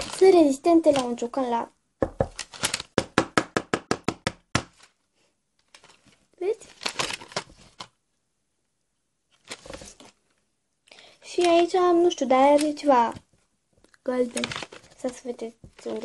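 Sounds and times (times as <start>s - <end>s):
plastic crinkling: 0.0s - 1.5s, 2.2s - 3.0s, 5.6s - 8.0s, 9.3s - 10.4s, 11.2s - 13.2s, 13.8s - 16.0s.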